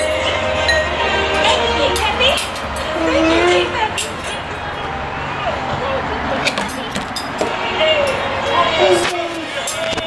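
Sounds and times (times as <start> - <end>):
indistinct voices: 0.0 - 10.0.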